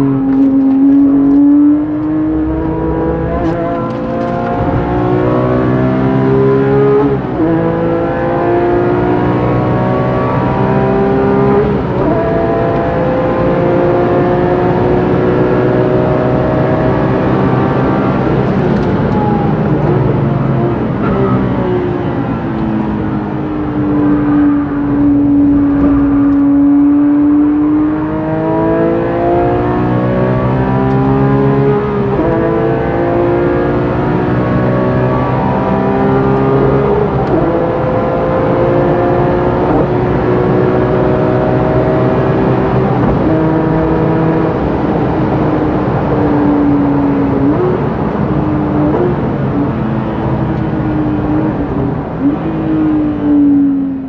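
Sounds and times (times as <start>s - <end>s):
car engine accelerating: 0.0s - 54.0s
engine throttle blips: 18.3s - 28.1s.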